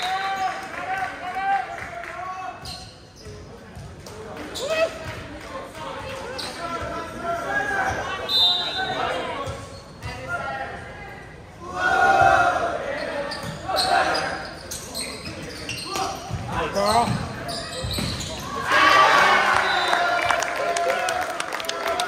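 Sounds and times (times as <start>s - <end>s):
players and spectators shouting: 11.6s - 14.5s, 18.4s - 22.0s.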